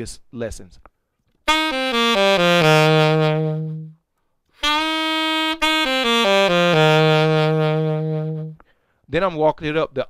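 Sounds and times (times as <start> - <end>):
saxophone run and held note: 1.5 - 3.9, 4.6 - 8.6.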